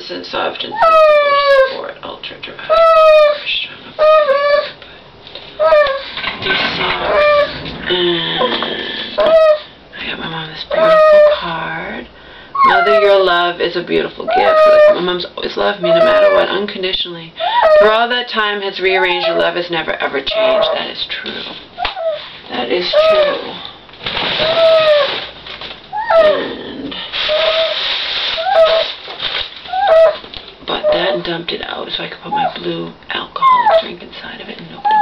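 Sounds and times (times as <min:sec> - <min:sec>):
dog whining: 0:00.7 - 0:01.8, 0:02.7 - 0:04.8, 0:05.5 - 0:09.8, 0:10.7 - 0:11.4, 0:12.6 - 0:13.3, 0:14.2 - 0:15.1, 0:15.7 - 0:16.6, 0:17.4 - 0:18.0, 0:19.0 - 0:19.6, 0:20.3 - 0:20.9, 0:21.8 - 0:23.6, 0:24.4 - 0:25.3, 0:25.9 - 0:29.0, 0:29.7 - 0:31.3, 0:33.4 - 0:33.9.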